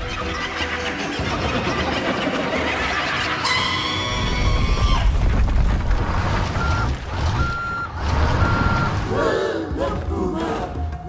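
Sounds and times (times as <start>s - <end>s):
high reversing beeps: 6.6s - 9.0s.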